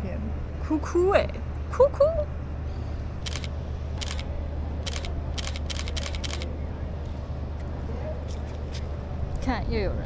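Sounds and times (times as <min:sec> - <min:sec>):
steady low hum: 0:00.0 - 0:10.0
camera shutter clicks: 0:03.2 - 0:06.5.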